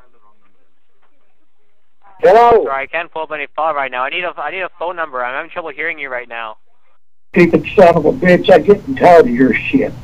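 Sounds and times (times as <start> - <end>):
muffled voice over telephone: 0.0 - 9.8
people speaking: 0.0 - 10.0.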